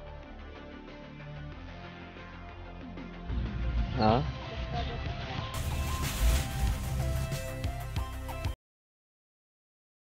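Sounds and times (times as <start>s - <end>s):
background music with bass line: 0.0s - 8.6s.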